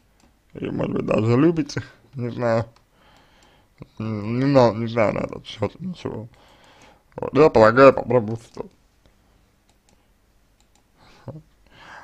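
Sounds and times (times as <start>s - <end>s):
faint clicks: 2.1s - 3.9s, 8.3s - 10.0s, 10.6s - 10.9s.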